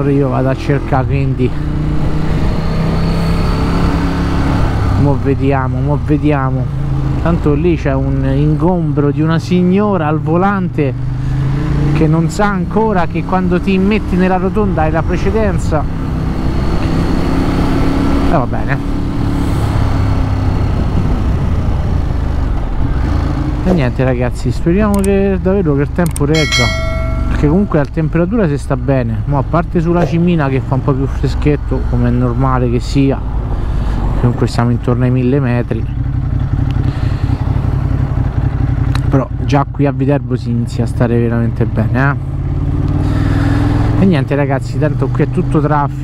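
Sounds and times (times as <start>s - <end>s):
motorcycle engine running: 35.9s - 39.5s.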